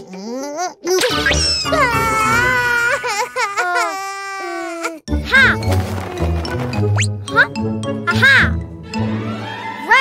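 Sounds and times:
cartoon character crying: 0.3s - 5.7s.

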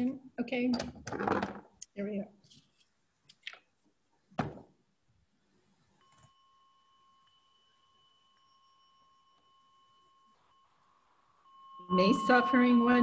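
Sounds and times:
bell ringing with two tones: 11.5s - 13.0s.

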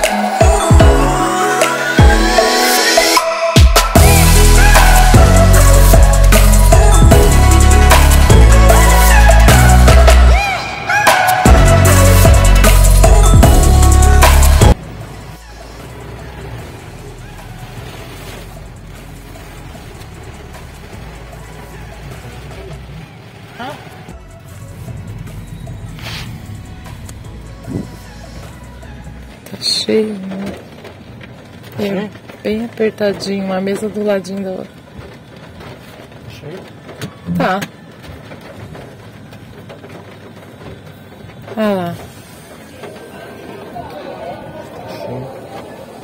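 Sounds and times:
rain on car glass: 0.0s - 46.0s
tyres on wet road: 0.0s - 46.0s
low engine hum: 11.5s - 46.0s.

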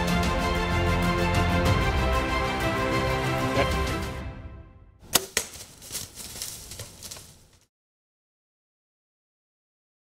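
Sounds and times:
bow shot snap: 5.0s - 5.7s
sharp crack: 5.0s - 7.6s.

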